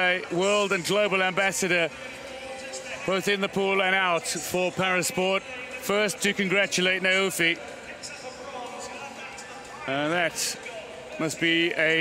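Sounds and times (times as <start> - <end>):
commentator speaking: 0.0 - 12.0
indoor swimming arena ambience: 0.0 - 12.0.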